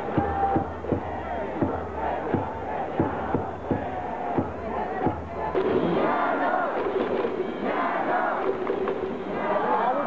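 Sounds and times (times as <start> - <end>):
crowd chanting and singing: 0.0 - 10.0.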